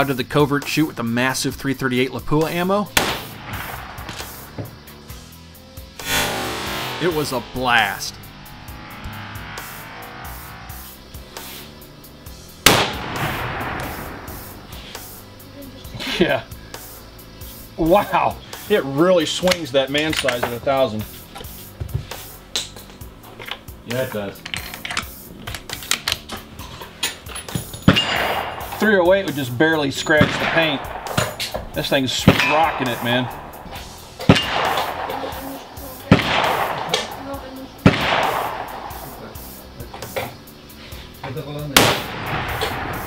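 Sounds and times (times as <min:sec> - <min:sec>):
rifle shot with echo: 0:03.0 - 0:04.5, 0:12.6 - 0:14.5, 0:27.9 - 0:28.9, 0:30.0 - 0:39.4, 0:41.8 - 0:43.0.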